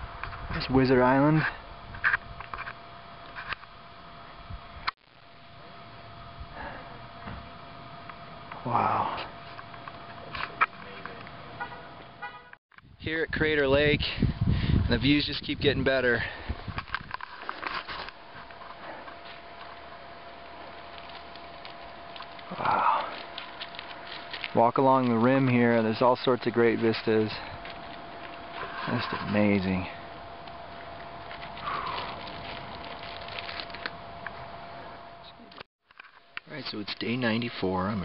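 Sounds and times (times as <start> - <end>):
faint steady hum: 0.0 - 38.0
steady outdoor hiss: 0.0 - 38.0
footsteps on dirt trail: 16.1 - 34.0.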